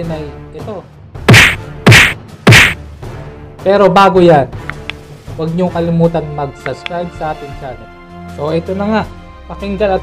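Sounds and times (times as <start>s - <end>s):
loud impact hits: 1.3s - 2.8s.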